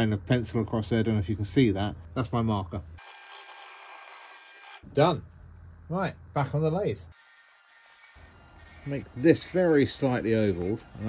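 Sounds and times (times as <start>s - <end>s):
wood lathe spinning: 3.0s - 4.8s, 7.2s - 11.0s.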